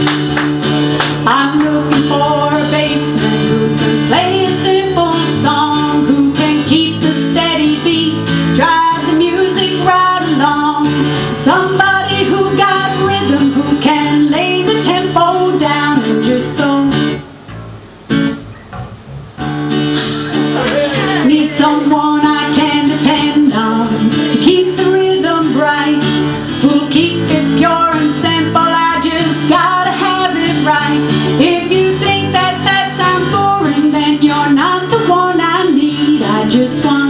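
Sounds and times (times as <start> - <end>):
electric bass guitar: 0.0 - 35.3
strummed acoustic guitar: 0.0 - 37.0
woman singing: 1.0 - 17.2, 21.0 - 37.0.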